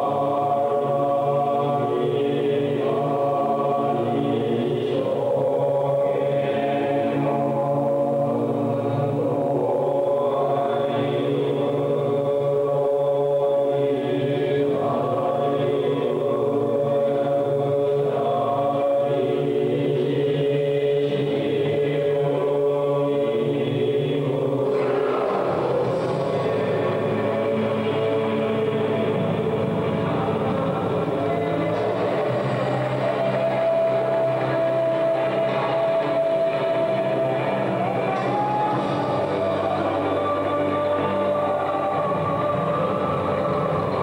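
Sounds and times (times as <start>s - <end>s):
chanting voices over low drone: 0.0s - 44.0s.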